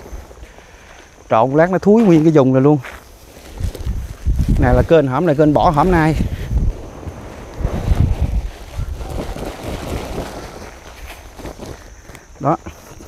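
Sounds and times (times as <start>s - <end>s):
plastic sack rustling: 3.1s - 13.0s.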